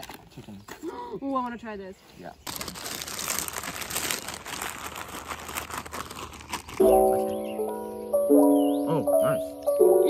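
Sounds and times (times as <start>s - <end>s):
plastic chip packet crinkling: 2.4s - 7.3s.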